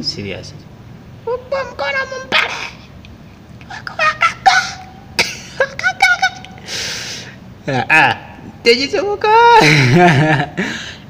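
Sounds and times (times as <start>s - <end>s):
man laughing: 4.0s - 6.6s, 7.6s - 8.5s, 9.4s - 11.0s.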